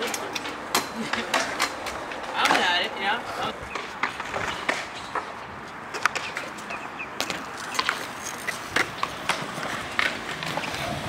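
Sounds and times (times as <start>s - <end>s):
wheels rolling on concrete: 0.0s - 11.0s.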